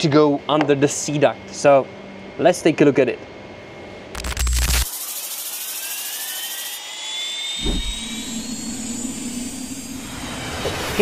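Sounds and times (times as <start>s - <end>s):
jet turbine whine: 4.9s - 11.0s
low thud: 7.6s - 9.0s
steady low rumble: 7.6s - 10.3s.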